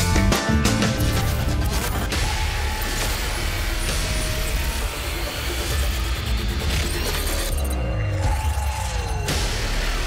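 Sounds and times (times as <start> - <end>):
heavy bass-laden trailer music: 0.0 - 10.0.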